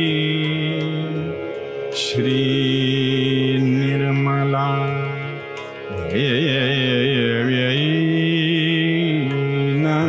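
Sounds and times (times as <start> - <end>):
person singing a devotional chant: 0.0 - 10.0.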